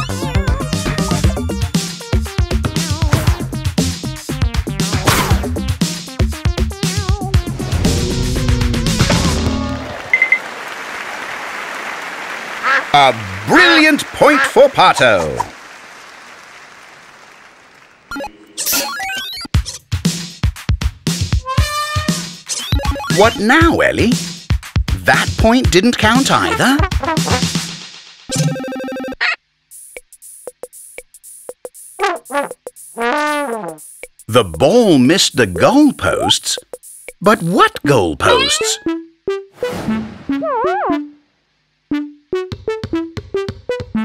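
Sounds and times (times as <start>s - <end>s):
steady clapping: 9.8s - 18.1s.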